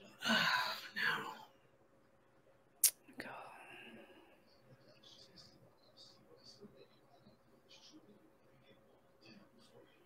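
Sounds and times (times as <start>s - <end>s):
faint whispered voice: 2.8s - 10.0s.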